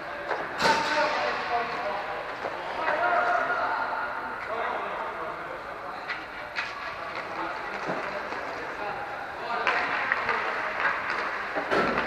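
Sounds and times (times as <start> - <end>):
hockey sticks striking puck: 0.2 - 3.5, 6.0 - 8.8, 9.4 - 12.0
skate wheels rolling: 6.0 - 12.0.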